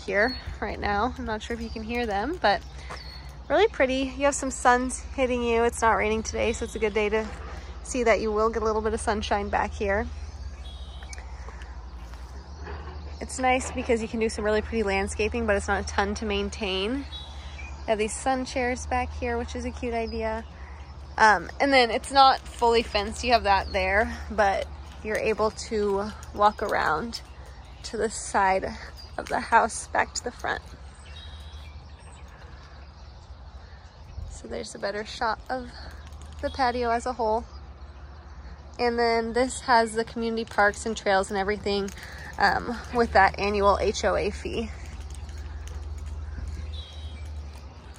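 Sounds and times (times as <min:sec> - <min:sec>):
birds chirping faintly: 0:00.0 - 0:47.9
steady low rumble: 0:00.0 - 0:47.9.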